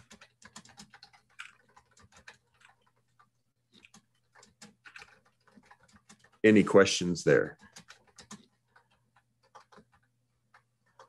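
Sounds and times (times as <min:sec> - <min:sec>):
computer keyboard clicks: 0:00.0 - 0:06.5, 0:07.5 - 0:11.0.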